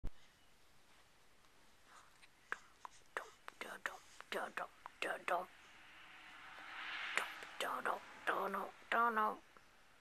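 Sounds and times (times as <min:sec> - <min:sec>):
person whispering rhythmic syllables: 0:02.4 - 0:05.6, 0:07.1 - 0:09.4.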